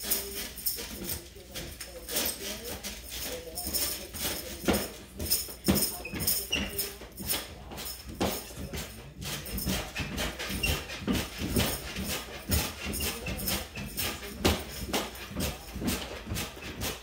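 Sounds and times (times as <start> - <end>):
jingling rattle: 0.0 - 17.0
trampoline bouncing thumps: 3.2 - 17.0.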